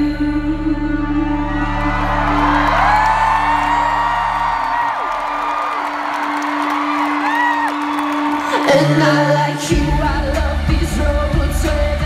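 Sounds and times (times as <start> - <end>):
crowd whooping: 1.2 - 9.5
deep bass: 9.7 - 12.0.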